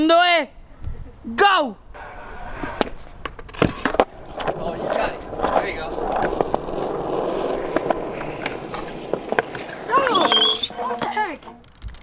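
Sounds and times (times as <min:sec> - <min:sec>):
sharp clacks of skateboard: 0:02.0 - 0:11.7
wheels rolling over concrete: 0:02.0 - 0:12.0.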